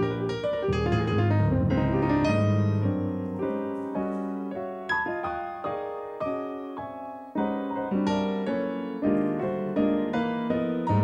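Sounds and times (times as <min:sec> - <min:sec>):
low bass piano note: 0:00.0 - 0:03.9
digital piano jazz chords: 0:00.0 - 0:11.0.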